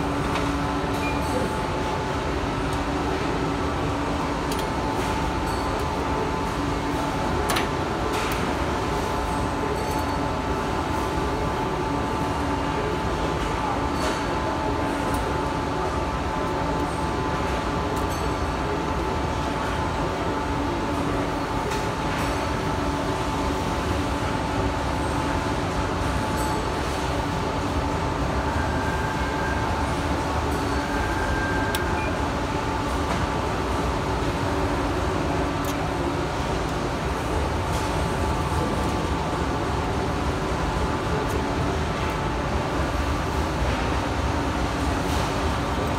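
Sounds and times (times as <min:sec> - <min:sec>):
machine mechanical hum: 0:00.0 - 0:45.9.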